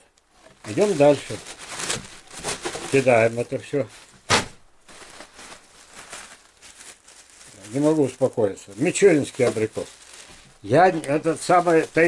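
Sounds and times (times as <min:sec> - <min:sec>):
plastic bag rustling: 0:00.3 - 0:12.0.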